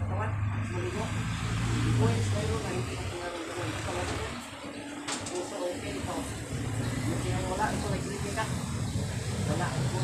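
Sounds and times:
vehicle engine rumble passing: 0.0s - 10.0s.

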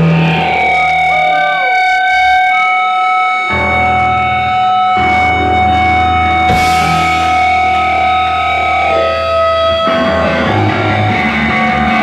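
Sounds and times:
guitar amplifier feedback whine: 0.0s - 12.0s.

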